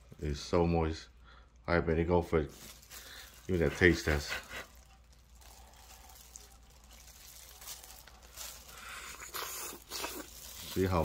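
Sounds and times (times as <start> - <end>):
wet chewing: 2.8 - 11.0.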